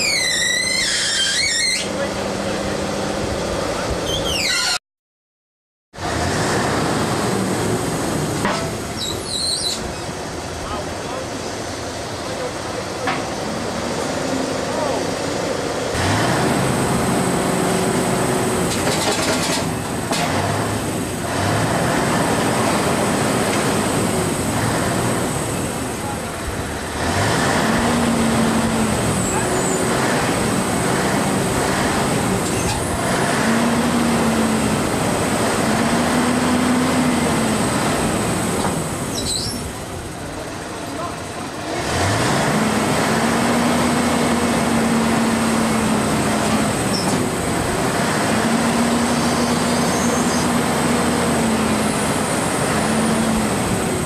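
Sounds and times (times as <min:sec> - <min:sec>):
diesel engine revving: 0:06.0 - 0:54.0.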